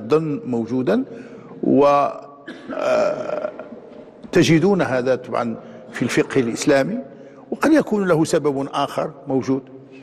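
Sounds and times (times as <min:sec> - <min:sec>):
man clearing throat: 0:02.1 - 0:03.8.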